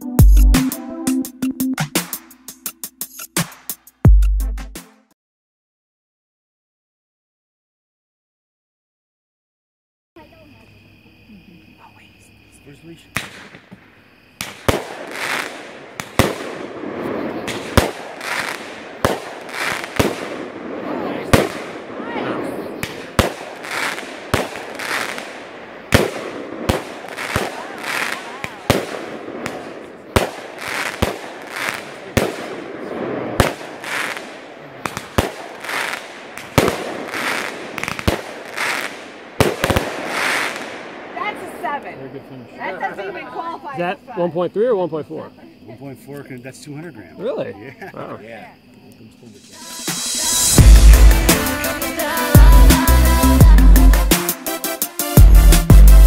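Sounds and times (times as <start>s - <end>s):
fireworks hissing: 12.6s - 41.8s, 49.3s - 55.2s
firework bangs: 13.1s - 41.9s, 49.4s - 52.9s.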